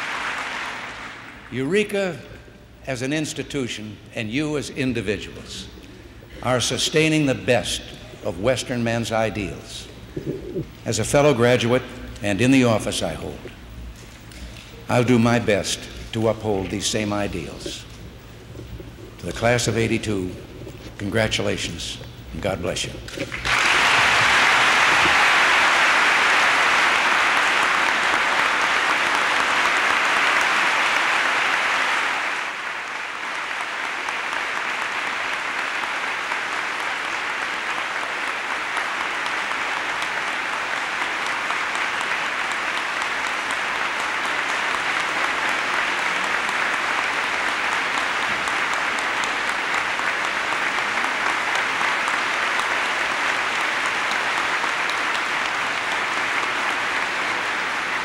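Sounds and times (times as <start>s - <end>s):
large audience applauding: 0.0s - 1.5s, 23.2s - 58.0s.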